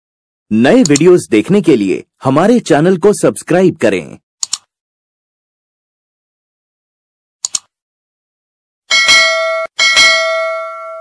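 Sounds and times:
notification bell dings: 8.9s - 11.0s.

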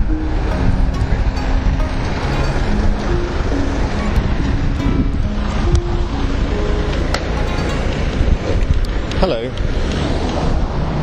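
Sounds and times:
faint tune of held notes: 0.0s - 9.6s
wind rumble on microphone: 8.1s - 11.0s.

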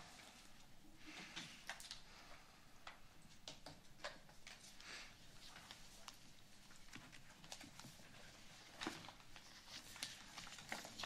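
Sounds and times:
faint clicks and taps: 2.8s - 8.2s.

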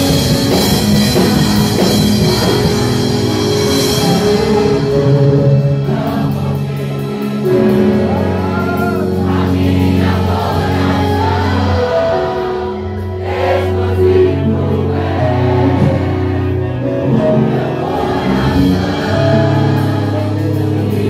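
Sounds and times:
congregation singing: 0.0s - 21.0s
held instrumental chords: 0.0s - 21.0s.

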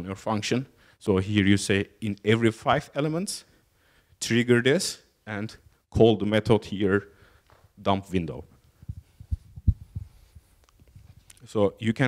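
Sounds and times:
microphone handling thumps: 8.7s - 11.3s.

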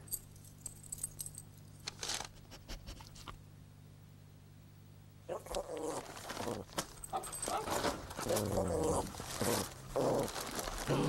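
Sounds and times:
gift wrap rustling: 1.9s - 2.4s, 5.8s - 11.0s
dog whining and yipping: 7.1s - 7.9s.

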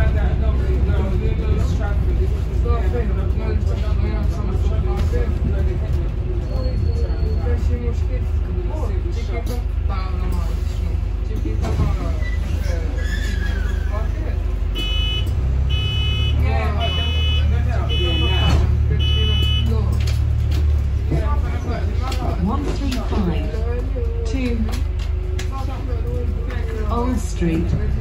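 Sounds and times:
bus engine rumble: 0.0s - 28.0s.

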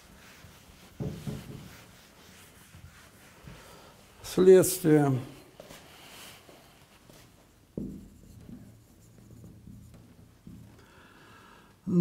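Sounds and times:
marker writing on whiteboard: 7.8s - 10.8s.

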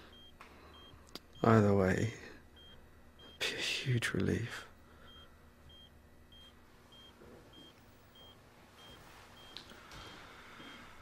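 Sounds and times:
quiet room hum: 0.0s - 11.0s.

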